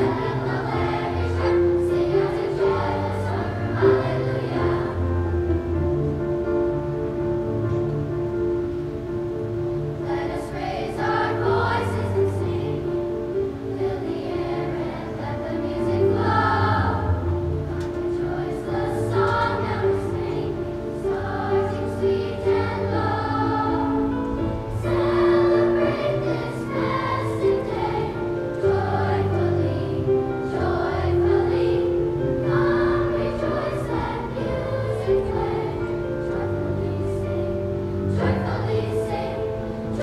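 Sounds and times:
children's choir singing: 0.0s - 40.0s.

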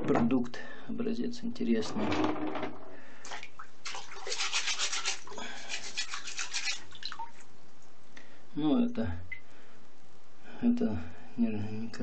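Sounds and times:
brush scrubbing wet crystal: 3.9s - 7.0s.

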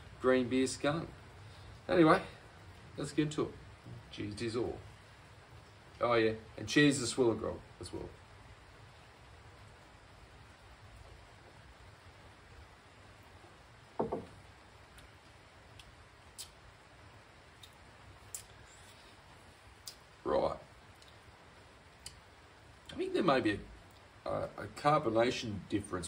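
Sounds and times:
faint background hum: 0.0s - 26.0s.

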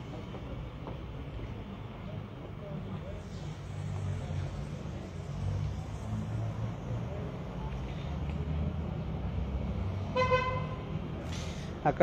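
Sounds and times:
street traffic rumble: 0.0s - 12.0s
car horn toot: 10.1s - 10.8s.

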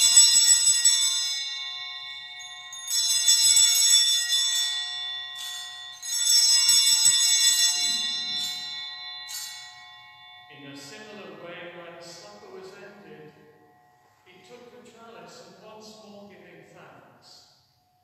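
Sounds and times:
small hand bells jangling: 0.0s - 11.2s.

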